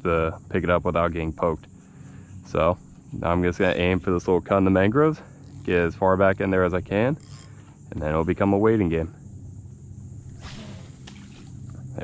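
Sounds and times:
faint low hum: 0:00.0 - 0:12.0
fishing line whoosh: 0:10.3 - 0:11.6.

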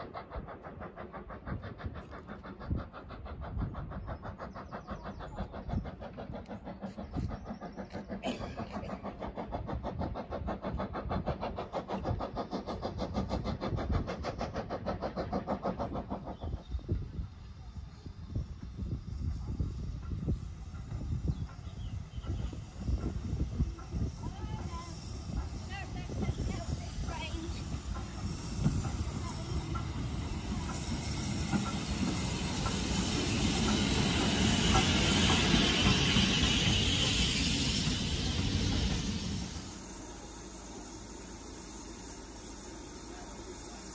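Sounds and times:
steam locomotive chuffing: 0:00.0 - 0:43.9
train wheels rumbling on rail: 0:00.0 - 0:43.9.

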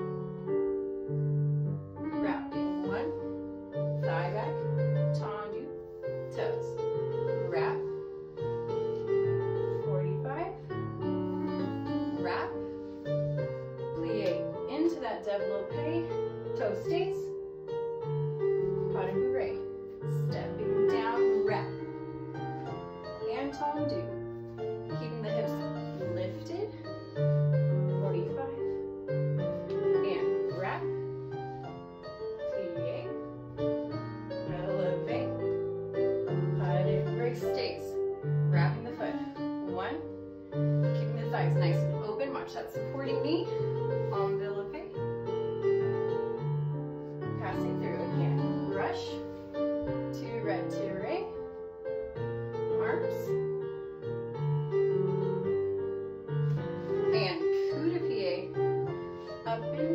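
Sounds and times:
piano music: 0:00.0 - 0:59.9.

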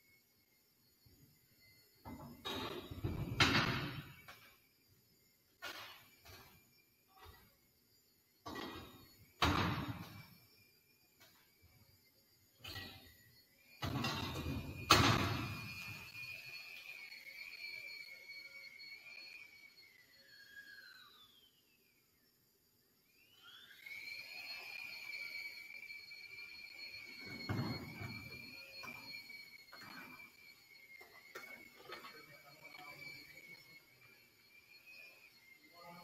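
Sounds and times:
steady high whine: 0:00.0 - 0:36.0.

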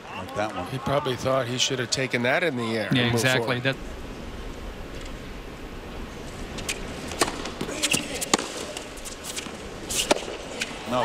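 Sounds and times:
crowd hum: 0:00.0 - 0:11.0
rackets hitting tennis ball: 0:06.3 - 0:11.0.

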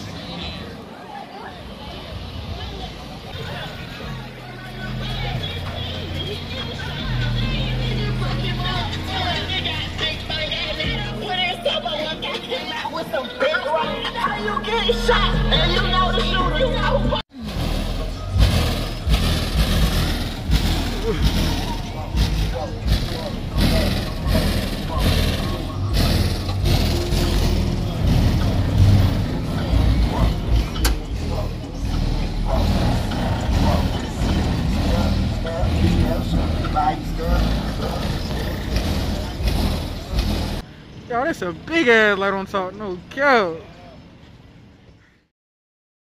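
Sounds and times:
car engine rumbling: 0:00.0 - 0:45.1
crowd voices: 0:00.0 - 0:45.3.

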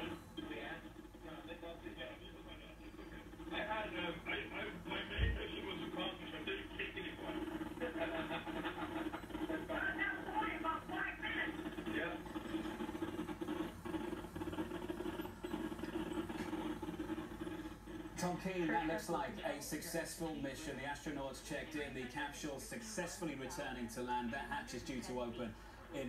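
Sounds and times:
indistinct television voices: 0:00.0 - 0:26.0
steady low hum: 0:00.0 - 0:26.0.

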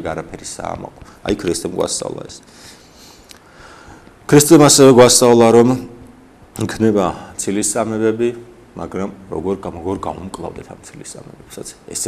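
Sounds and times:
man speaking: 0:00.0 - 0:02.5, 0:04.3 - 0:06.0, 0:06.6 - 0:12.0.

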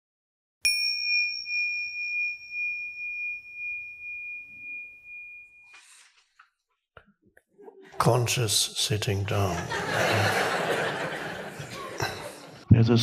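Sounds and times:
struck bell chime ringing: 0:00.7 - 0:06.1.

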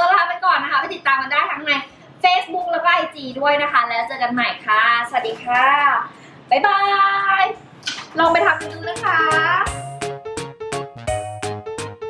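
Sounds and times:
woman calling sing-song bye-bye: 0:08.2 - 0:09.7.

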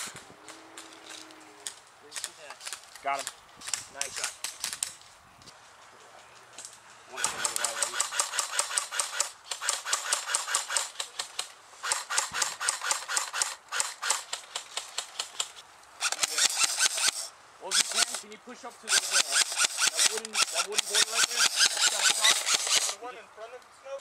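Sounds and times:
airsoft rifles firing full-auto: 0:07.2 - 0:18.2, 0:18.9 - 0:23.0.

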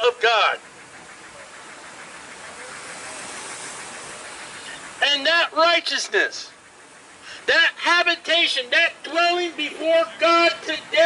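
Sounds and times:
steady hissing noise: 0:00.0 - 0:11.0.

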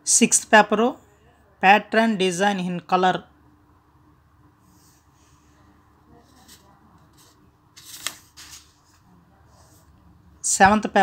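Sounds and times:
paper rustling: 0:06.2 - 0:09.1
page flipping snap: 0:07.8 - 0:08.6.

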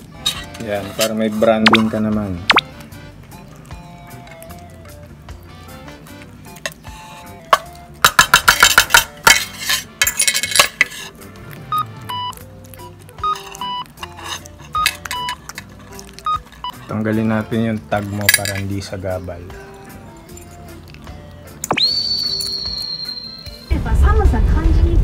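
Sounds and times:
tin clinking on china plate: 0:08.1 - 0:11.0, 0:13.4 - 0:15.7, 0:18.2 - 0:18.8
music of short high notes: 0:21.6 - 0:23.7.

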